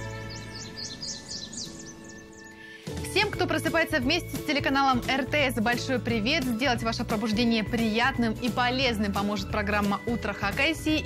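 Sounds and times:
bird chirping: 0:00.0 - 0:02.9.

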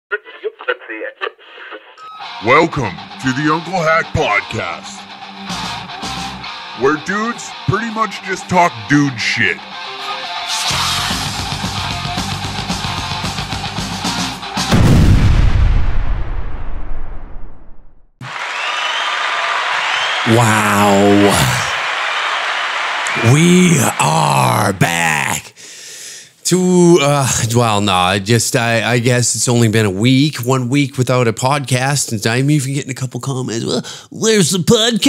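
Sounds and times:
person speaking through radio speaker: 0:00.1 - 0:01.9
electric guitar music: 0:02.0 - 0:14.7
explosion booming: 0:14.7 - 0:18.1.

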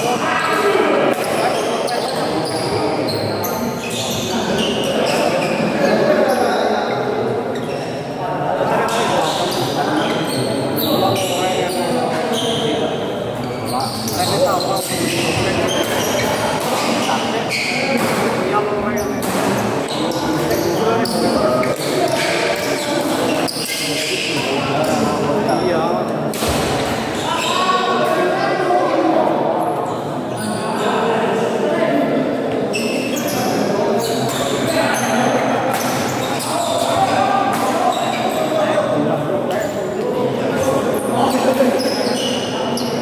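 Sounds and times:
voices of players and onlookers: 0:00.0 - 0:43.0.

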